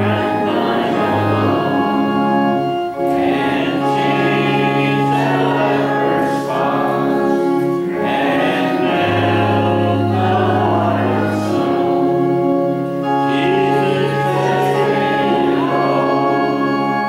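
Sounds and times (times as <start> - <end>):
congregation singing a hymn: 0.0 - 17.0
organ chords: 0.0 - 17.0.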